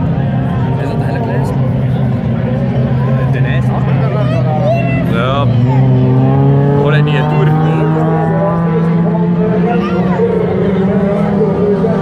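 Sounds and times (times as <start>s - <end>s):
race car engine accelerating: 0.0s - 12.0s
voices: 0.0s - 12.0s.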